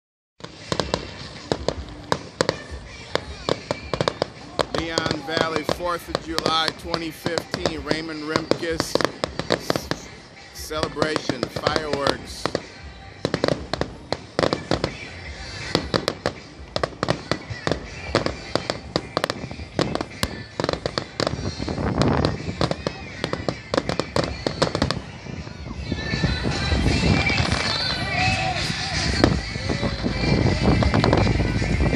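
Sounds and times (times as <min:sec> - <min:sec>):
fireworks bursting bangs: 0:00.4 - 0:31.9.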